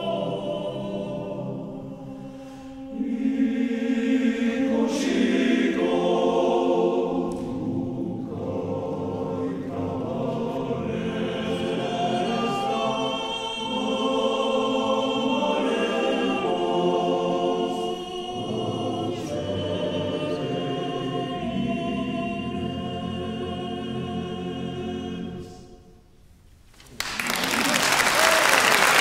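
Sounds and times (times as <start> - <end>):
male choir singing held chords: 0.0 - 26.0.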